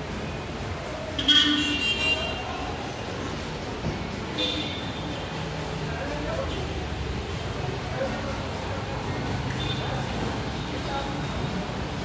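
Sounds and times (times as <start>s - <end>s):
mall background noise: 0.0s - 12.0s
steady traffic: 0.0s - 12.0s
vehicle horn toot: 1.2s - 2.5s.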